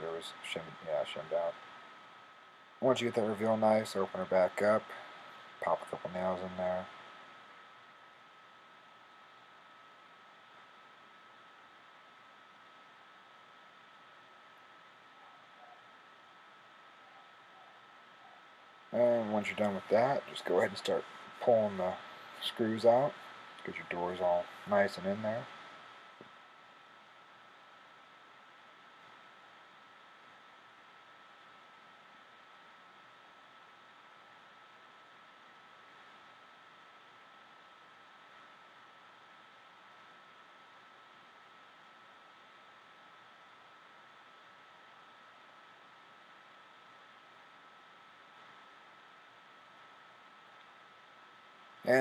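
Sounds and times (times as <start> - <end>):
thin constant high tone: 0.0 - 32.6
faint steady hiss: 0.0 - 52.0.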